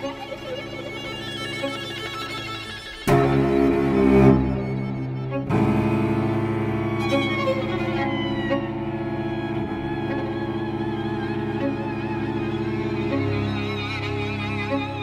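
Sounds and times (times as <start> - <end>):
string quartet music: 0.0 - 15.0.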